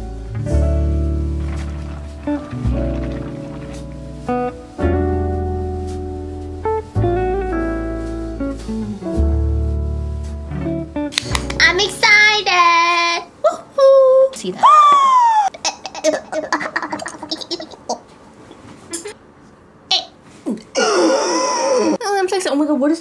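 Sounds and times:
plucked guitar music: 0.0 - 12.1
person wailing: 20.7 - 22.0.

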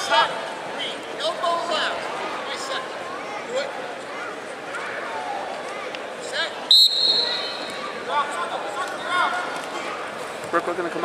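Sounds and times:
referee's whistle: 6.7 - 7.8.

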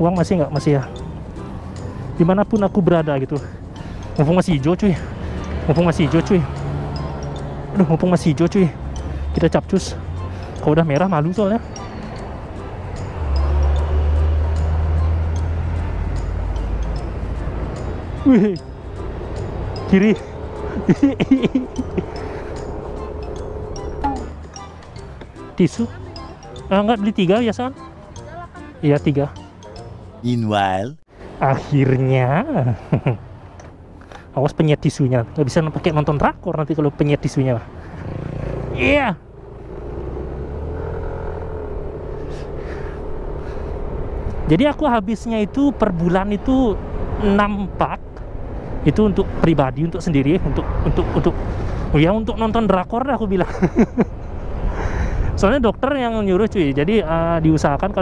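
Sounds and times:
road noise: 0.0 - 58.0
scooter engine pulling away: 38.0 - 44.5.

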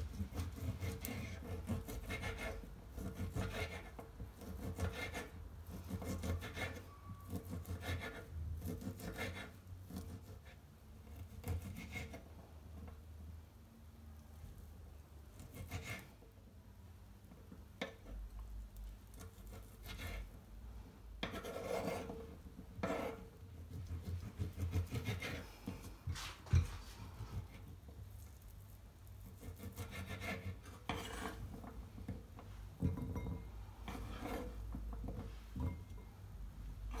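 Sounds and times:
knife blade rasping through sausage: 0.1 - 10.6, 15.4 - 16.1, 19.1 - 20.3, 21.2 - 22.2, 22.8 - 25.8, 29.1 - 31.5, 33.9 - 34.6.

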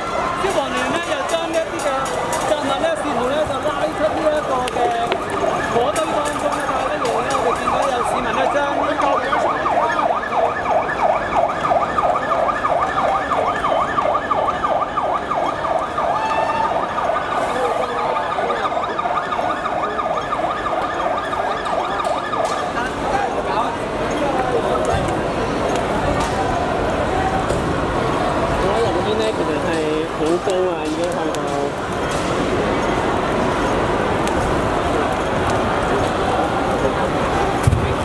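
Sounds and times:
emergency siren warbling: 0.0 - 30.6
crowd noise: 0.0 - 38.0.

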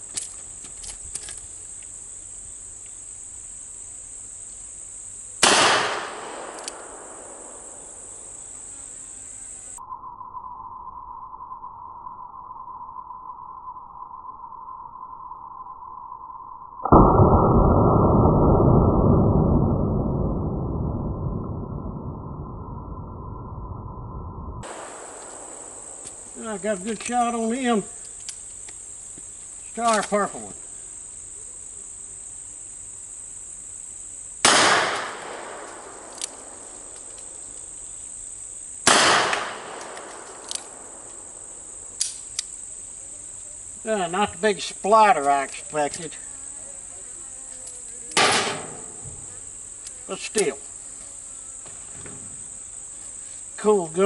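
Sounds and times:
high drone of insects: 0.0 - 54.0
revolver gunshot crack: 5.4 - 7.7, 24.6 - 26.2, 34.4 - 36.7, 38.8 - 41.0, 48.2 - 49.0
muffled low gunshot boom: 16.9 - 23.9.

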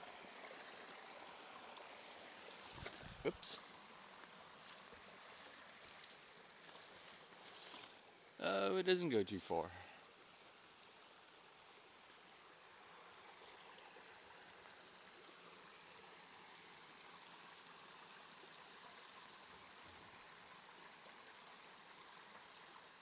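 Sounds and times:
faint forest ambience hiss: 0.0 - 23.0.

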